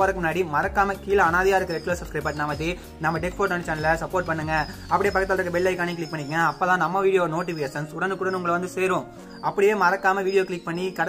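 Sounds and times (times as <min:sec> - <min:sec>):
man talking: 0:00.0 - 0:11.0.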